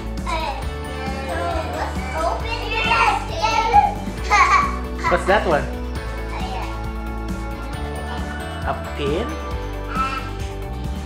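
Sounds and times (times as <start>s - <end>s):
background music: 0.0s - 11.0s
young children chattering: 0.2s - 5.2s.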